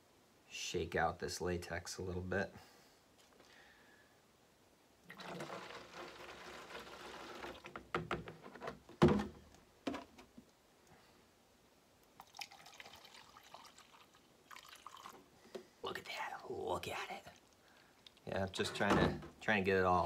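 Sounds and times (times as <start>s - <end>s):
liquid pouring into measuring cup: 5.1s - 7.7s, 12.2s - 15.3s
liquid pouring into plastic jug: 5.1s - 8.0s, 12.2s - 15.3s
plastic containers knocking: 7.7s - 10.3s.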